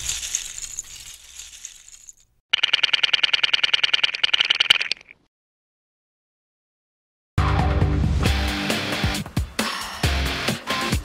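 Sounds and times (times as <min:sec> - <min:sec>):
plastic bricks clattering: 0:00.0 - 0:02.3.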